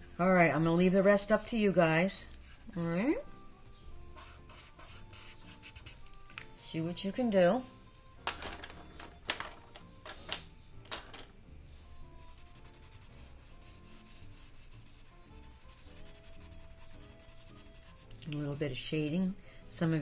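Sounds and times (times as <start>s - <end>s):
quiet background music: 0.0s - 20.0s
marker scratching on paper: 4.2s - 6.0s, 12.2s - 18.8s.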